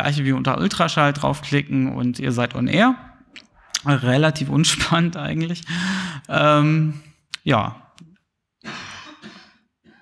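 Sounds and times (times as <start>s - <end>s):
person clearing throat: 8.6s - 10.0s.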